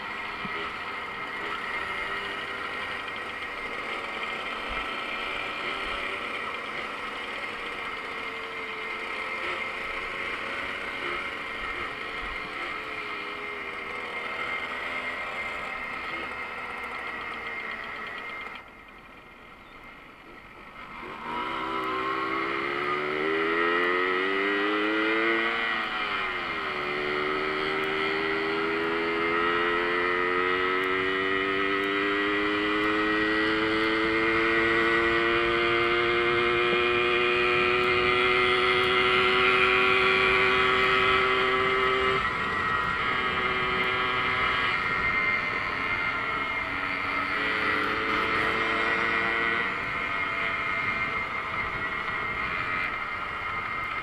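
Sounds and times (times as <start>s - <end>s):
moped engine running: 0.0s - 54.0s.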